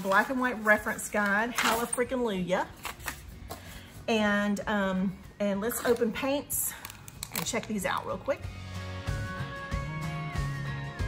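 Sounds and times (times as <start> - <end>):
paper rustling: 0.0 - 2.0, 2.8 - 3.7.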